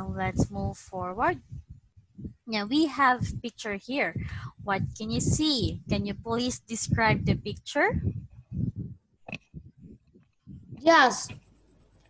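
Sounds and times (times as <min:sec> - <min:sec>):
child saying yes: 0:10.8 - 0:11.3.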